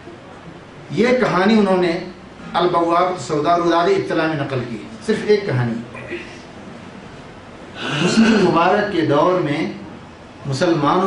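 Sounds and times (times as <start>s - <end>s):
man talking: 0.9s - 6.1s, 7.9s - 9.8s, 10.4s - 11.0s.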